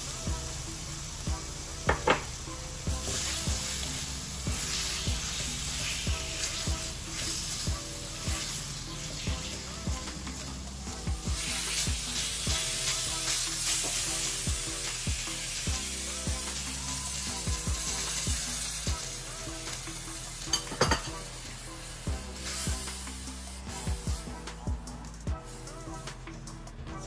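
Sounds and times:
chicken sizzling in a wok: 0.0 - 26.2
spatula knocking on a wok: 1.8 - 2.4, 20.6 - 21.1
spatula scraping a wok: 2.0 - 24.5.

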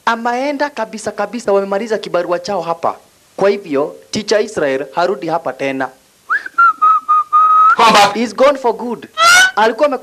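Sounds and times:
person speaking: 0.0 - 6.0, 7.8 - 10.0
person whistling: 6.3 - 7.8.

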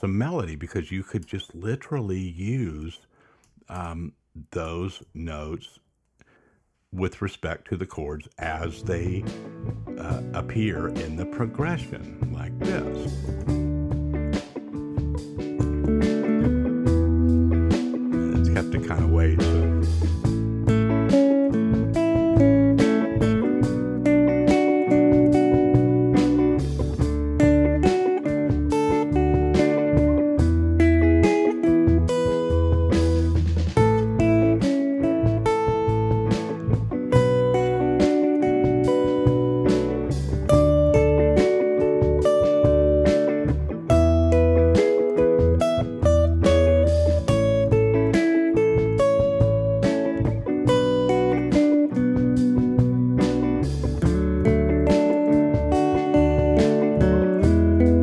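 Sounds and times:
backing track bass line: 7.0 - 58.0
electric guitar melody: 8.5 - 58.0.

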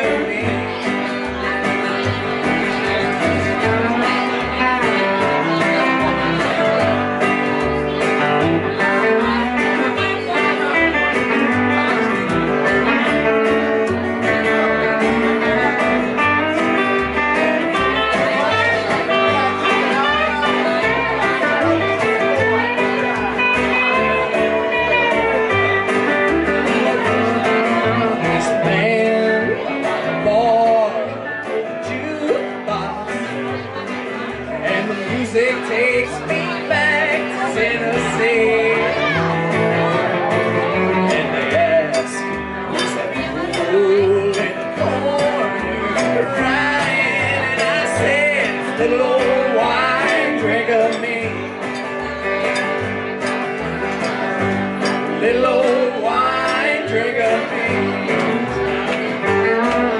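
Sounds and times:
strummed acoustic guitar: 0.0 - 59.9
upright double bass: 0.0 - 59.9.

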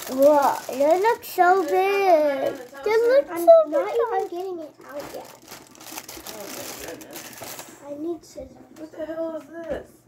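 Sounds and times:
packaging crinkling: 0.0 - 7.8.

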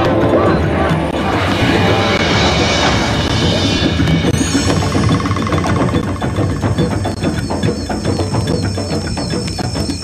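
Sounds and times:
clicking percussion: 0.0 - 10.0
steady high tones: 0.0 - 10.0.

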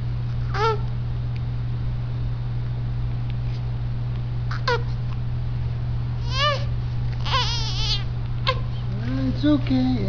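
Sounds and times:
baby crying: 4.5 - 4.8, 6.2 - 8.8
baby squeak: 4.5 - 4.9, 6.2 - 8.7.

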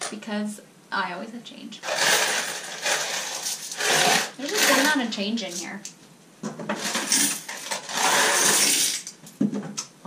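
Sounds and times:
coins clinking into glass jar: 1.9 - 5.0, 6.8 - 9.1.

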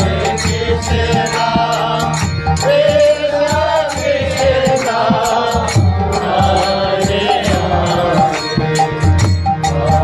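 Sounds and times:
voices chanting: 0.0 - 9.0
harmonium chords: 0.0 - 10.0.

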